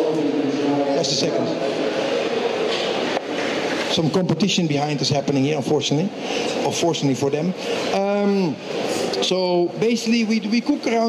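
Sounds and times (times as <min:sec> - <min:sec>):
crowded hall din: 0:00.0 - 0:11.0.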